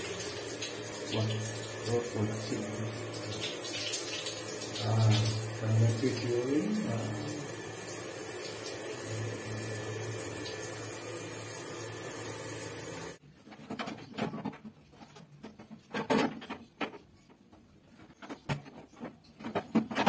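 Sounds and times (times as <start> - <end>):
shower spray hissing: 0.0 - 13.2
water heater burner hum: 0.0 - 13.2.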